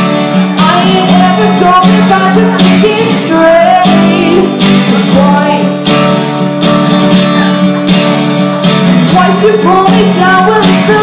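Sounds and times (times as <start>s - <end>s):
acoustic guitar strumming: 0.0s - 11.0s
woman singing: 0.6s - 6.2s, 9.0s - 11.0s.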